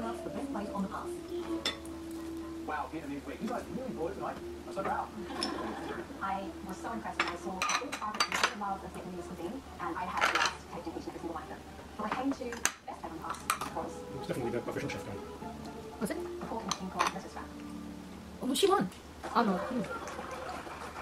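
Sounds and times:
metal spoons clinking on ceramic: 7.2 - 8.6.

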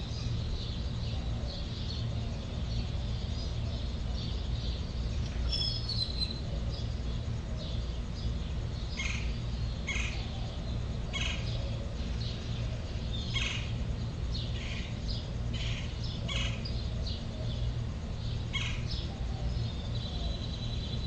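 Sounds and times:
birds chirping: 0.0 - 21.0
steady low hum: 0.0 - 21.0.

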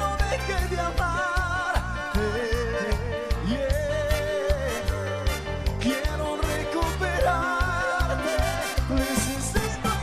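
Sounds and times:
bass and drum beat: 0.0 - 10.0.

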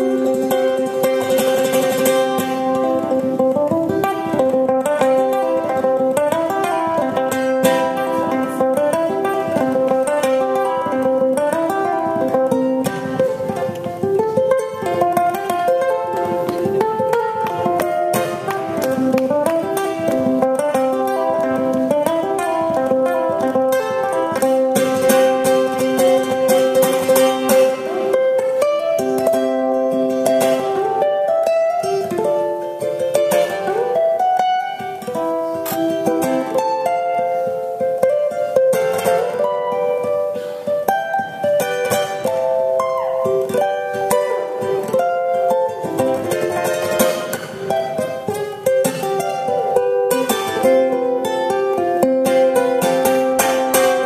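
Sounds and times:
ukulele bluegrass picking: 0.0 - 54.0.

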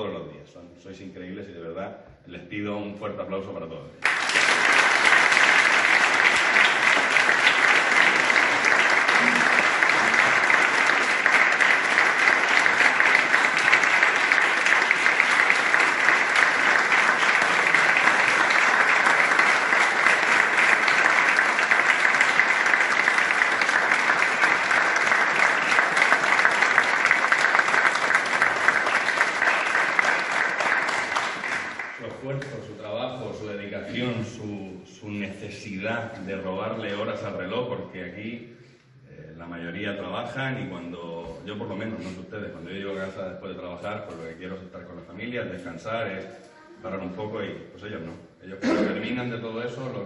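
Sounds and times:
large audience applauding: 4.0 - 32.6.

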